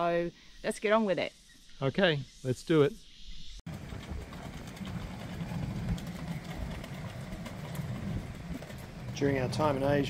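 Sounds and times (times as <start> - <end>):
strong wind buffeting microphone: 3.7 - 10.0.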